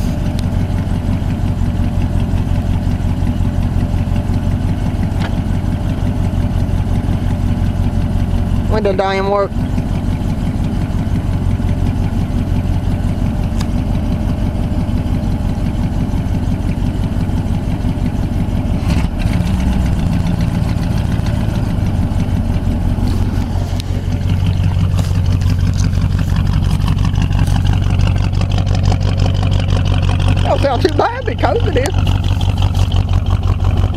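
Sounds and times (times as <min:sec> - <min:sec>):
car engine idling: 0:00.0 - 0:33.9.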